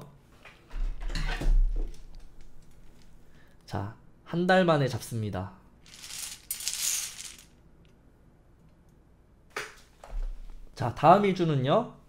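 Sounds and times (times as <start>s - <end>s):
balls rattling in bingo cage: 5.9s - 7.5s.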